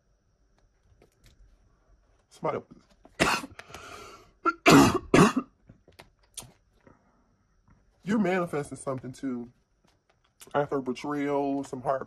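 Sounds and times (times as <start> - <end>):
woman coughing: 3.2 - 3.5, 4.4 - 5.5.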